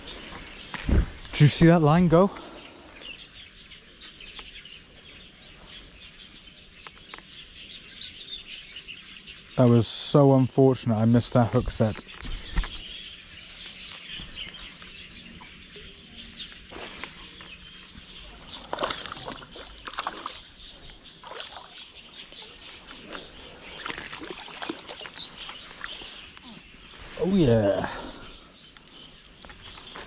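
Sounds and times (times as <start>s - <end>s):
fish splashing and thrashing in water: 18.5s - 22.0s, 23.7s - 26.0s.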